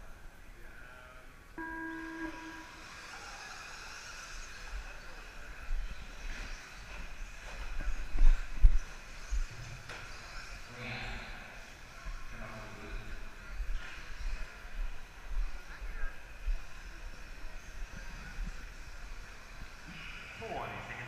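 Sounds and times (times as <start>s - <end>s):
electronic beep: 1.6s - 3.0s.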